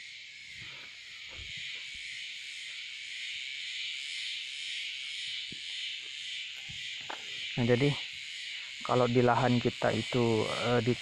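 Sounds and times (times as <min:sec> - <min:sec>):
insects chorus: 0:00.0 - 0:11.0.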